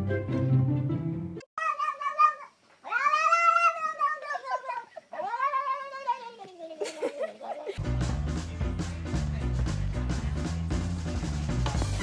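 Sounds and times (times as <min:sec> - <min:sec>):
cat yowling meows: 0:01.6 - 0:06.3.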